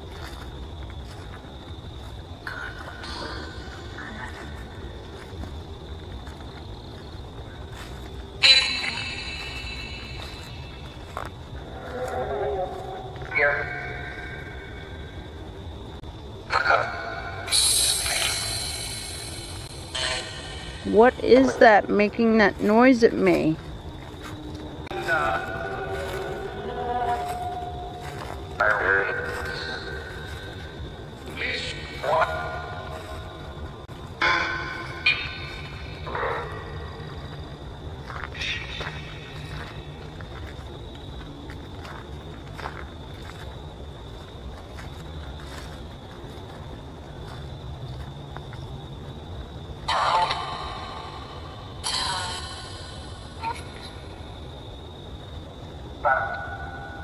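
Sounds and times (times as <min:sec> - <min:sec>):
steady high tone: 0:08.4 - 0:15.4, 0:16.5 - 0:23.5, 0:34.2 - 0:37.0, 0:49.9 - 0:54.2.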